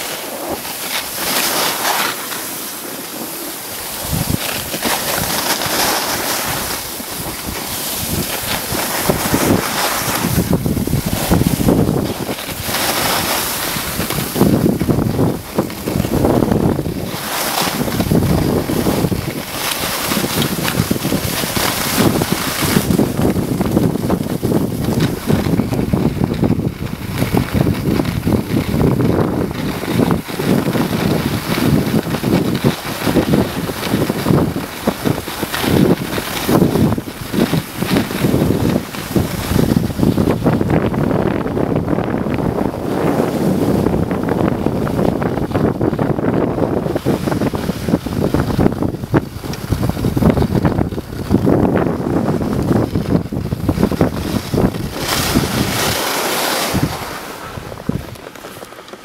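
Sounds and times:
skis sliding over snow: 0.0 - 59.0
wind buffeting microphone: 0.0 - 59.0.

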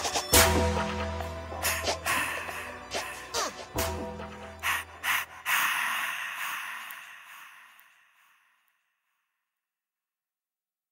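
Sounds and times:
hip-hop beat: 0.0 - 7.1.

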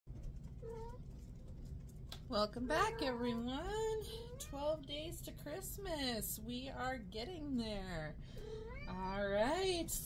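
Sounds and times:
low room hum: 0.1 - 10.0.

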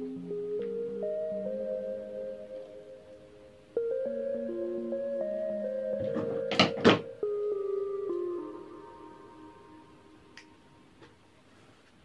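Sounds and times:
calm background music: 0.0 - 11.1.

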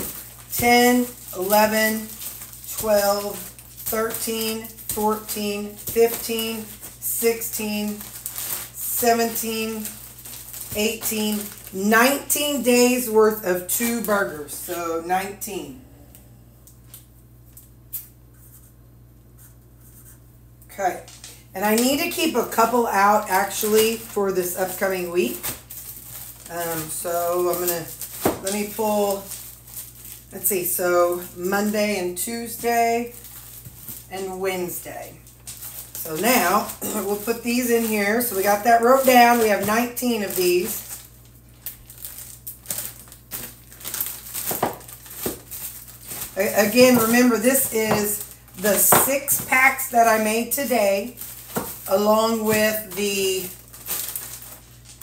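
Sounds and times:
plastic bags crinkling: 0.0 - 15.3, 21.1 - 55.0
steady low hum: 0.0 - 55.0.

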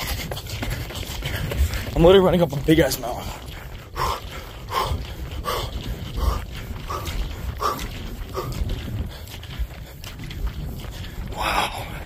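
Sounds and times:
man panting hard: 0.0 - 2.0, 3.1 - 12.0
low rumble: 0.0 - 12.0.

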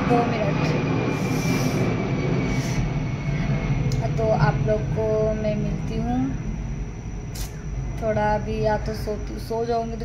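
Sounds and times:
airplane flying overhead: 0.0 - 10.0
thin high whine: 0.0 - 10.0.

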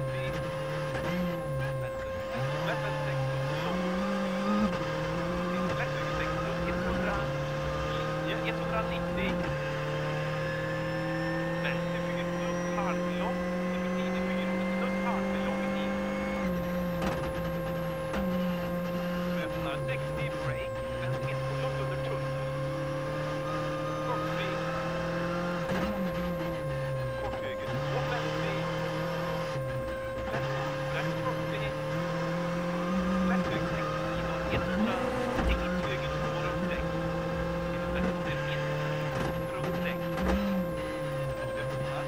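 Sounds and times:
rally car engine revving: 0.0 - 42.0.

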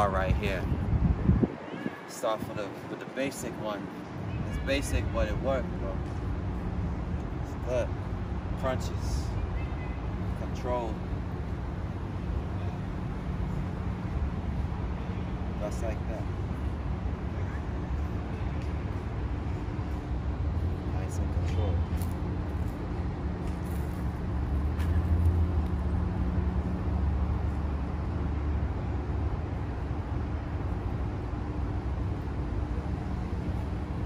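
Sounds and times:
city street traffic rumble: 0.0 - 34.0
constant hum: 0.0 - 34.0.

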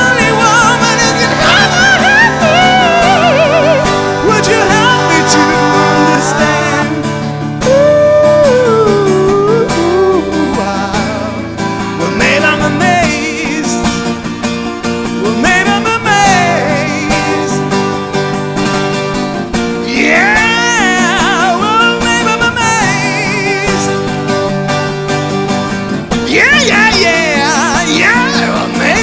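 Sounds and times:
man singing wordless melody: 0.0 - 14.2, 15.1 - 17.8, 19.8 - 24.2, 26.2 - 29.0
acoustic guitar playing chords: 0.0 - 29.0.

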